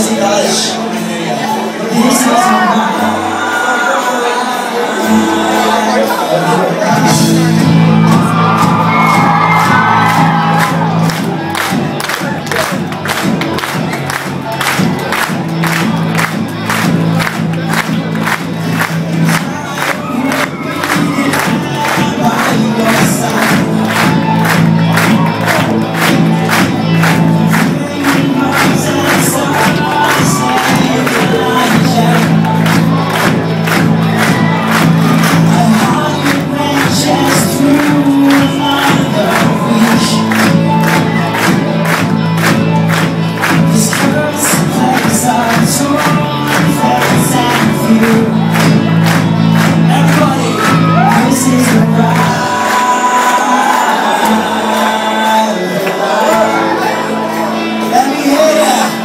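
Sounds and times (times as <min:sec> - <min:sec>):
crowd cheering and shouting: 0:00.0 - 0:59.0
rock band playing: 0:00.0 - 0:59.0.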